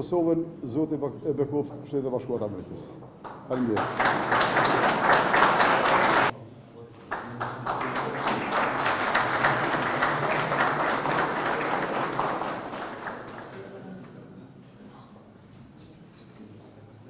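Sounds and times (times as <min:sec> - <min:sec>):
audience applauding: 0:03.6 - 0:06.3, 0:07.1 - 0:13.9.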